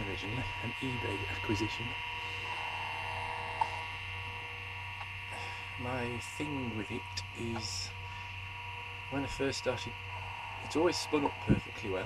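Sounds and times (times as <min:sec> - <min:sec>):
computer hum and whine: 0:00.0 - 0:12.0
hard drive spinning: 0:00.0 - 0:12.0.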